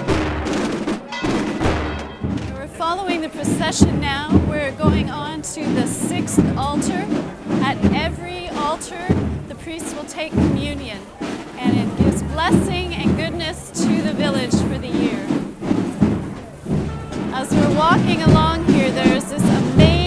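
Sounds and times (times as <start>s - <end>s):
crowd voices: 0.0s - 20.0s
drum strokes: 0.0s - 20.0s
marching band playing: 0.0s - 20.0s.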